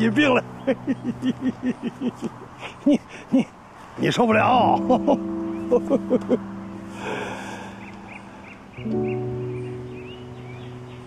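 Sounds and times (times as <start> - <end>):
soft background music: 0.0 - 2.5, 4.0 - 11.0
old man laughing: 0.3 - 3.6, 4.4 - 6.4
breathy exhale: 6.8 - 8.7.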